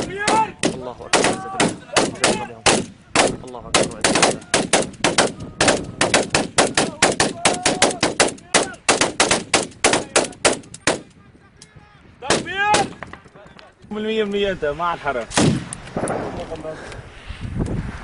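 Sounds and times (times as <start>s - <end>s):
man shouting: 0.0s - 2.6s, 6.7s - 8.9s, 11.8s - 13.0s
automatic gunfire: 0.2s - 11.1s.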